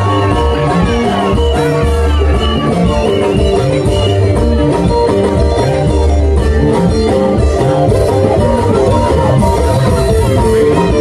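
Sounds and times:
deep bass: 0.0 - 11.0
lead guitar: 0.0 - 11.0.

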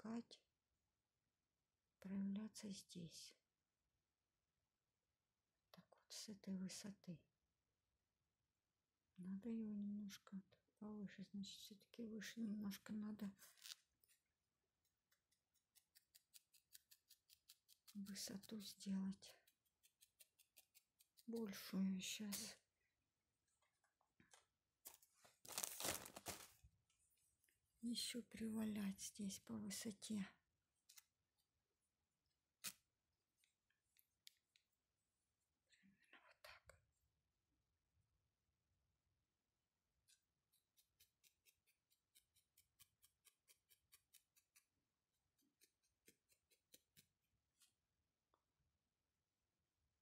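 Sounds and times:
felting needle stabbing wool: 14.8 - 22.5, 32.5 - 33.5, 40.0 - 47.8
wool tearing rustle: 25.3 - 26.6.

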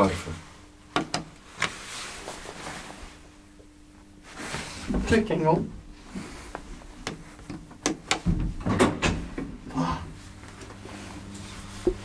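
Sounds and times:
steady low hum: 0.0 - 12.0
elevator door clicks and knocks: 7.8 - 9.6.

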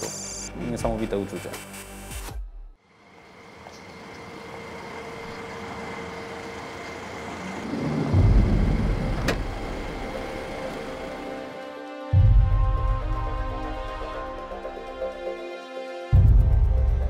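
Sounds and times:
vehicle engine hum and hiss: 2.8 - 11.9
deep loud rumble: 7.5 - 11.2.

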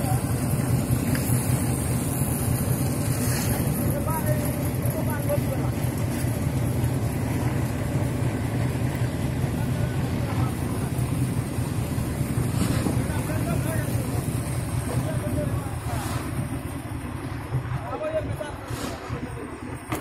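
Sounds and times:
low engine drone: 0.0 - 20.0.

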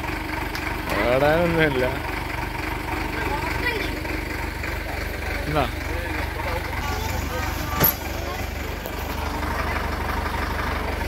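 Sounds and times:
tractor diesel engine idling: 0.0 - 11.0.

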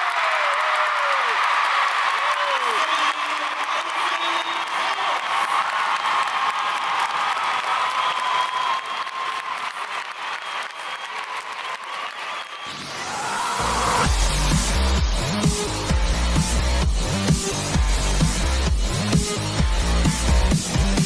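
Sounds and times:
crowd applauding: 0.0 - 14.8.

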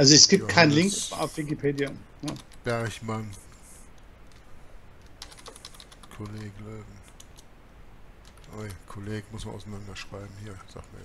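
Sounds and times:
typing on computer keyboard: 1.8 - 2.7, 5.0 - 7.5, 8.2 - 8.8.

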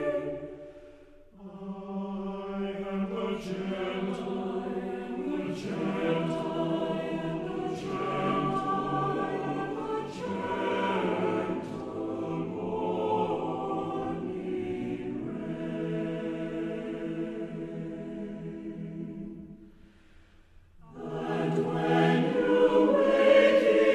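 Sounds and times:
choir singing slow chords: 0.0 - 23.9.

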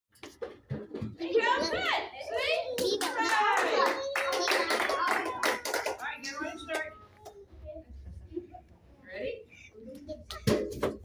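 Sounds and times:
group clapping: 2.7 - 7.4.

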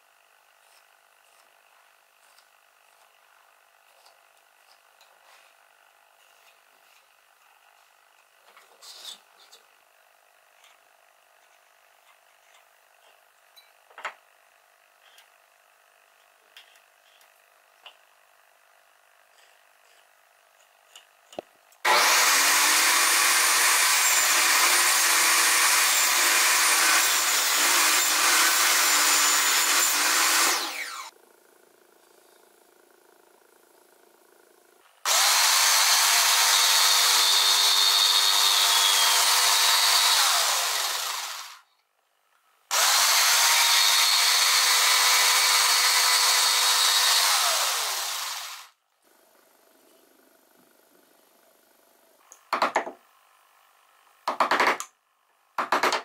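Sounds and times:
jigsaw cutting wood: 0.0 - 7.8, 21.8 - 31.2, 35.0 - 41.7, 42.7 - 49.4, 54.3 - 54.8.

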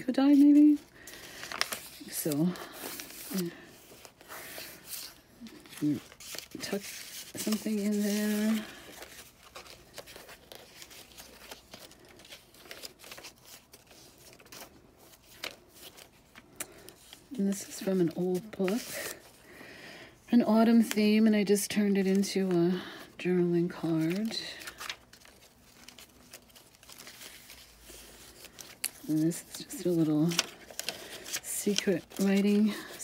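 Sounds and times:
paper pages rustling: 0.0 - 19.4, 23.6 - 33.0.

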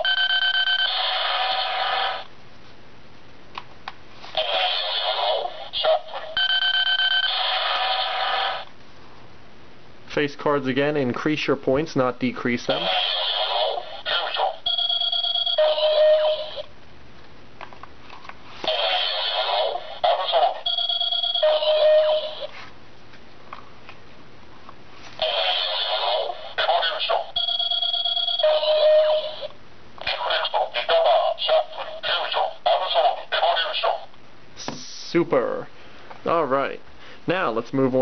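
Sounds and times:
toy recorded voice call: 4.4 - 8.6, 12.7 - 16.7, 18.7 - 22.5, 25.2 - 34.1.

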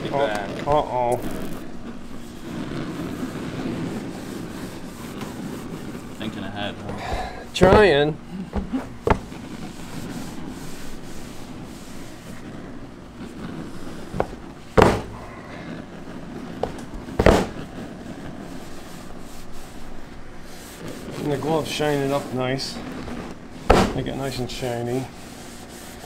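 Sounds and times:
hands rubbing hard candy: 0.0 - 26.0
sharp thumps: 6.8 - 9.8, 14.1 - 15.3, 16.6 - 17.8, 23.2 - 24.2.

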